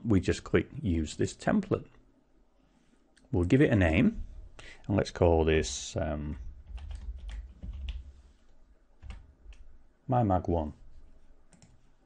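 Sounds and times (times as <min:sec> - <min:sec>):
computer keyboard typing: 0:06.6 - 0:08.1, 0:09.0 - 0:09.6, 0:11.5 - 0:11.8.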